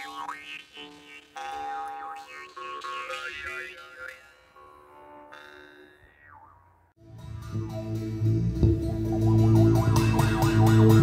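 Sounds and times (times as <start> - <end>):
jaw harps twanging drone: 0.0 - 11.0.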